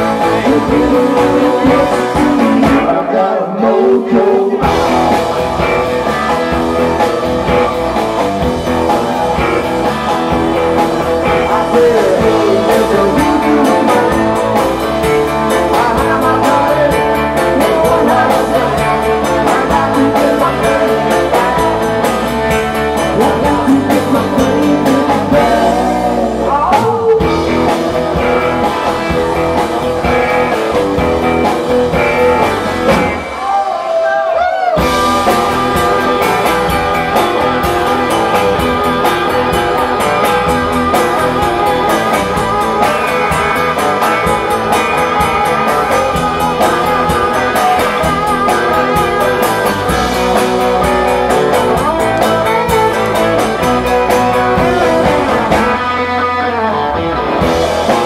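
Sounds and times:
man singing: 0.0s - 5.4s, 11.1s - 27.9s, 39.4s - 56.8s
electric guitar: 0.0s - 58.0s
live rock band playing: 0.0s - 58.0s.

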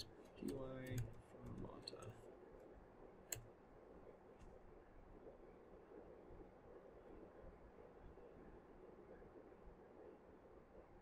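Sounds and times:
computer keyboard clicks: 0.0s - 2.1s.

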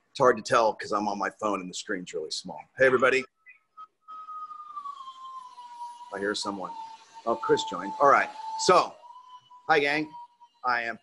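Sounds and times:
siren wailing: 3.7s - 11.0s.

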